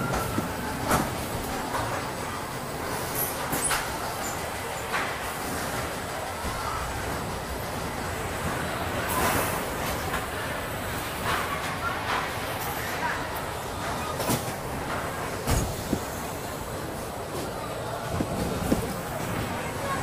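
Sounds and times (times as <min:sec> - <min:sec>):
coaster car rumbling on track: 0:00.0 - 0:20.0.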